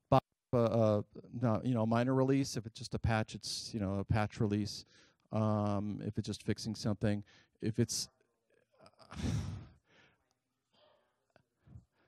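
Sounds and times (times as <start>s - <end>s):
man talking: 0.0s - 8.1s
man sighing: 9.0s - 9.8s.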